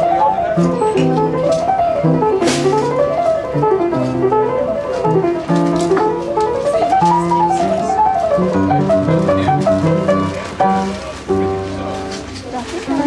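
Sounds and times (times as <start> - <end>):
upright piano playing: 0.0 - 13.0.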